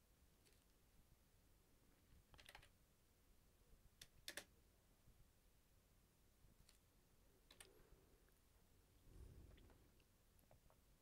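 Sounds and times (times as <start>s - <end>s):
faint keyboard clicks: 2.1s - 2.8s, 4.0s - 4.5s, 7.4s - 7.8s.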